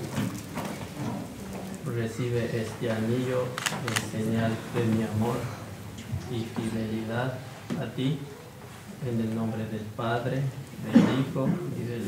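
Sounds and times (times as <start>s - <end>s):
man talking: 1.8s - 8.4s, 9.0s - 12.0s.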